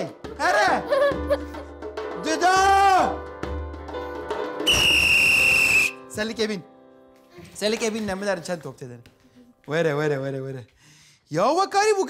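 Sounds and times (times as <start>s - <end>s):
background music: 0.0s - 12.0s
shrill whistle blast: 4.6s - 6.0s.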